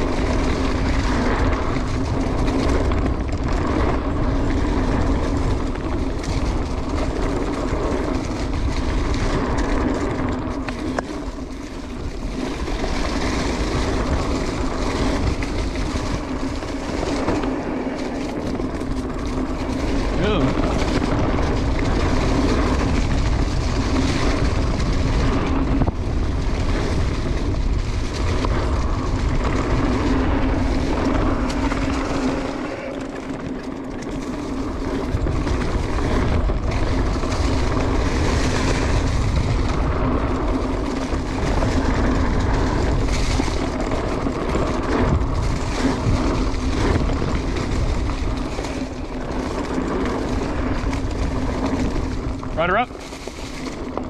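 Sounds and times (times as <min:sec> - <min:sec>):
bike rattling over bumps: 0:00.0 - 0:54.0
bike tyres rolling on dirt: 0:00.0 - 0:54.0
wind rushing over microphone: 0:00.0 - 0:54.0.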